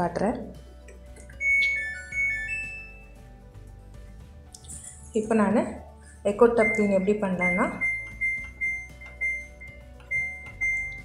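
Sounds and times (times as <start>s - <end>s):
washing machine panel beeps: 1.4s - 3.0s, 6.5s - 11.0s.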